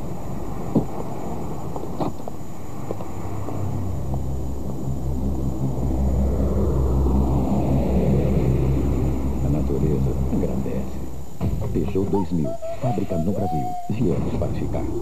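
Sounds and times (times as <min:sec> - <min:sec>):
car engine running: 0:00.0 - 0:12.1.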